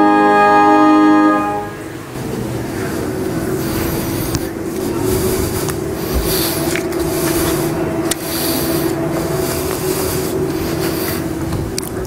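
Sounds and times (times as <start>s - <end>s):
church organ chord: 0.0s - 11.5s
steady low hum with hiss: 0.1s - 12.0s.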